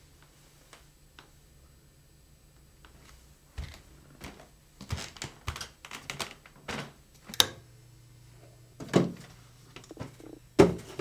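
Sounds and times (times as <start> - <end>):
bare feet on hardwood floor: 2.9 - 5.7.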